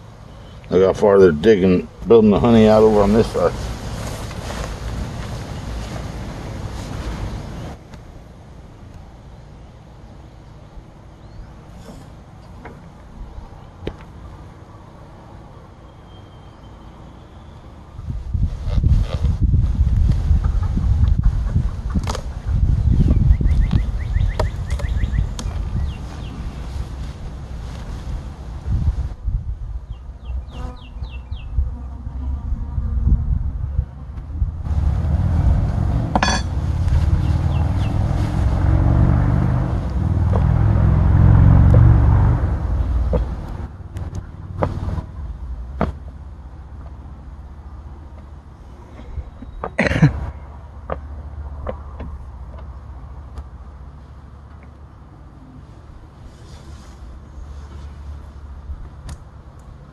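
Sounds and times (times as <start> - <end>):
wind rumbling on microphone: 17.9 - 45.8
quick bird chirps: 22.3 - 26.4.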